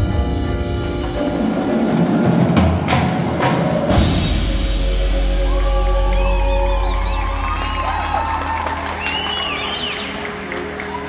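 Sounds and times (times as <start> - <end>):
drumline sustained chord: 0.0 - 11.0
audience whooping and cheering: 5.1 - 11.0.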